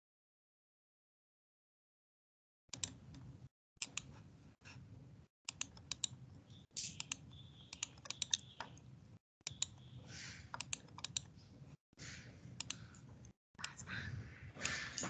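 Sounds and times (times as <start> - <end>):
keyboard typing: 5.5 - 6.2, 6.9 - 11.4
mouse clicks: 5.5 - 6.2, 6.8 - 11.3, 12.6 - 13.0.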